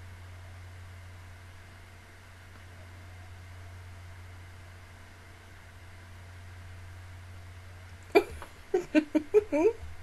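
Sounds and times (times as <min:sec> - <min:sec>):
faint low hum: 0:00.0 - 0:10.0
woman laughing: 0:08.1 - 0:09.9.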